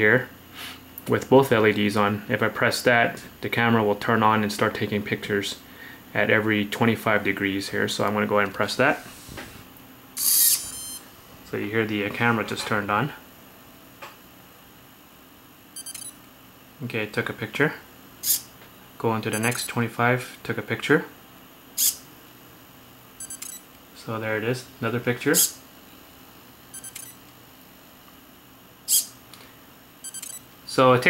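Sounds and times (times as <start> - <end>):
servo whirring: 10.2 - 11.0, 26.8 - 27.2
short high electronic beeps: 10.2 - 11.0, 15.8 - 16.2, 19.3 - 19.7, 23.2 - 23.6, 26.7 - 27.2, 30.0 - 30.5.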